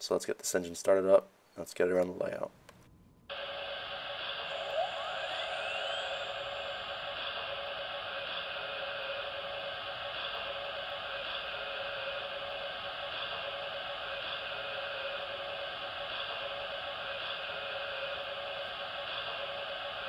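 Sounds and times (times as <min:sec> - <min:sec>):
rising whine: 0:03.3 - 0:20.0
steam hiss through small speaker: 0:03.3 - 0:20.0.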